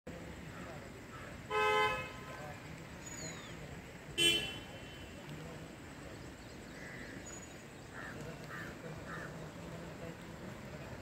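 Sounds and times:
low background murmur: 0.1 - 11.0
horn toot: 1.5 - 2.3, 4.2 - 5.1.

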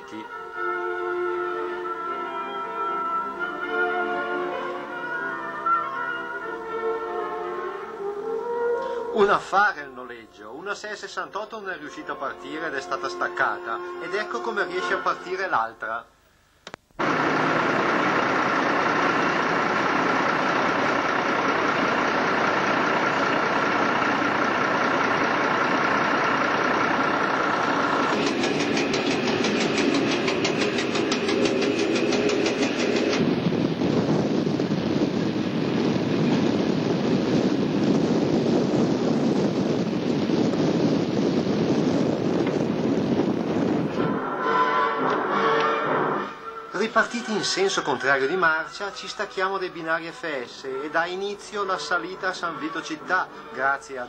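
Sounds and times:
rapid ticking: 17.0 - 33.2
diesel railcar engines running: 17.0 - 54.0.

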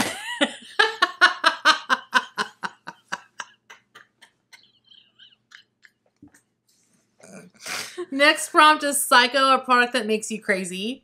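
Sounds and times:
women laughing: 0.0 - 6.0.

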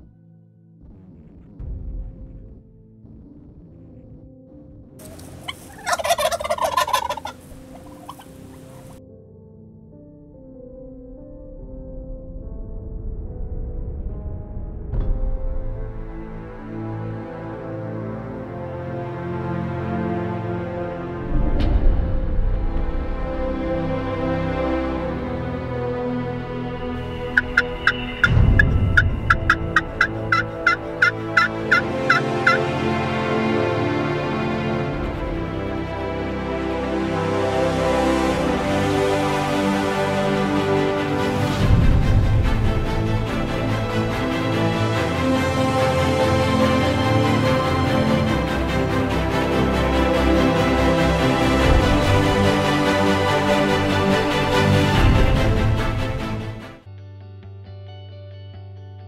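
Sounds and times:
background music: 0.0 - 59.0
turkey gobbling: 5.0 - 9.0, 27.3 - 32.7
loud low rumble: 25.1 - 31.8, 40.8 - 44.7.

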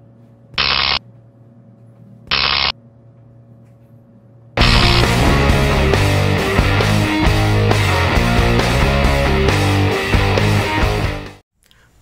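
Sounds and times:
steady low electrical hum: 0.0 - 7.0
short loud electric buzzes: 0.6 - 1.0, 2.3 - 2.7, 4.6 - 7.6.

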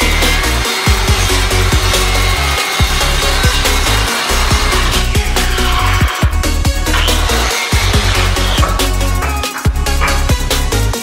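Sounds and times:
circular saw cutting wood: 0.0 - 11.0
electronic dance music: 4.0 - 11.0.

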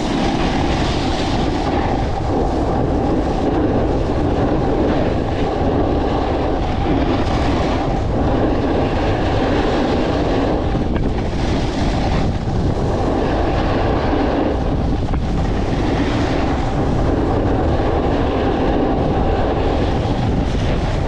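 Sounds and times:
skis scraping on snow: 0.0 - 21.0
wind buffeting microphone: 0.0 - 21.0.

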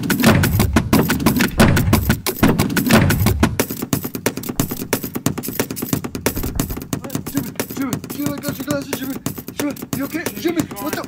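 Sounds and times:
sharp clicks and knocks: 1.3 - 3.6, 4.4 - 5.1, 6.2 - 7.0.

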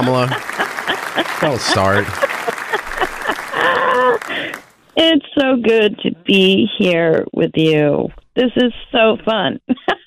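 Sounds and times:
person speaking: 0.0 - 0.4, 1.2 - 7.8
applause: 0.0 - 4.7.

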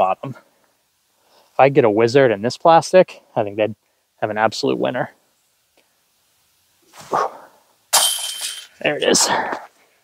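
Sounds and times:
disc hitting basket chains: 7.9 - 9.0.

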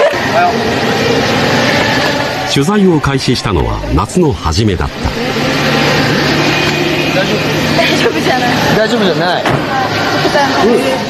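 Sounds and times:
street noise: 0.0 - 11.0
vehicle engine running: 0.0 - 11.0.

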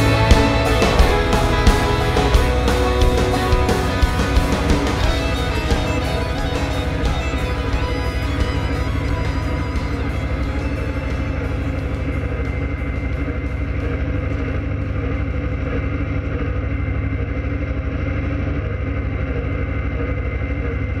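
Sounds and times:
music: 0.0 - 15.6
tractor engine under load: 0.0 - 21.0.

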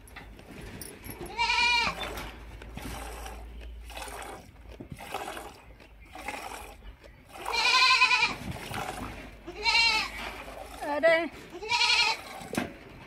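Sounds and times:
goat bleating: 1.2 - 2.2, 7.3 - 8.5, 9.4 - 12.6.

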